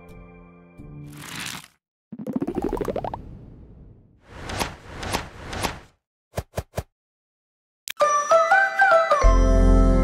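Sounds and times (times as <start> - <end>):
rising run of pops: 2.1 - 3.5.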